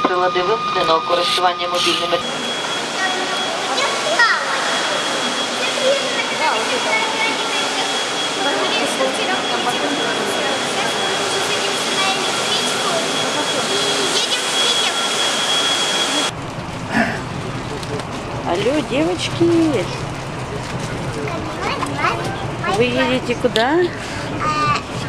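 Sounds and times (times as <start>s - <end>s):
high-pitched whine: 0.0s - 25.0s
indistinct voices: 0.0s - 25.0s
rushing hall noise: 0.0s - 25.0s.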